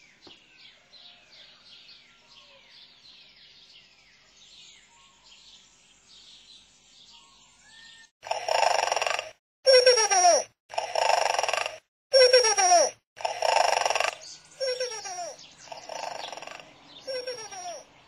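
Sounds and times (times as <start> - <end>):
faint bird chirps: 0.0 - 10.0, 13.3 - 18.0.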